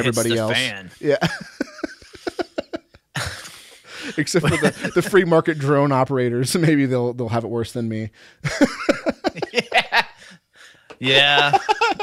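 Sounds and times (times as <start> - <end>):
man chuckling: 1.1 - 5.4, 8.5 - 10.3, 11.1 - 12.0.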